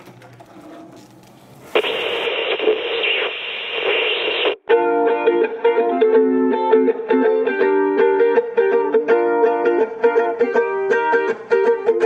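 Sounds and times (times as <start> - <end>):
television static hiss: 1.2 - 4.7.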